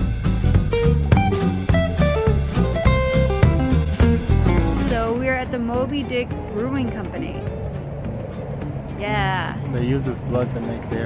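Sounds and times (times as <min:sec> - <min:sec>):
jazz music with drums: 0:00.0 - 0:11.0
woman and man talking: 0:09.0 - 0:10.4.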